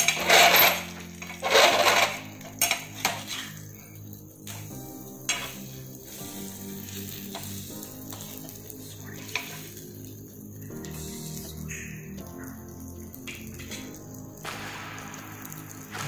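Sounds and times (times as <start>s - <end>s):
soft background music: 0.0s - 16.0s
fish sizzling in oil: 0.8s - 16.0s.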